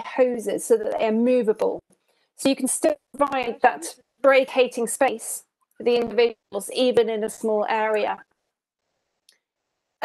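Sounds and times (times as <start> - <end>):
woman speaking: 0.0 - 1.8, 2.4 - 8.2.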